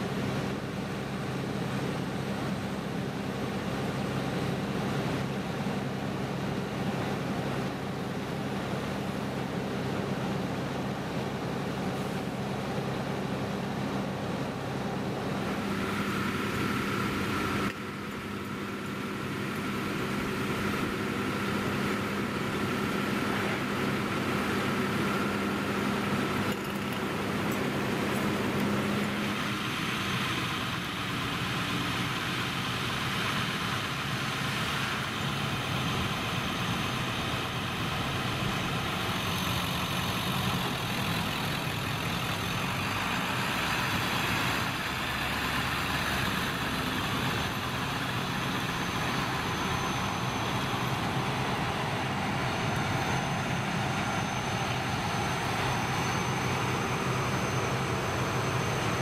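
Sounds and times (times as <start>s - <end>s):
diesel truck engines idling: 0.0s - 59.0s.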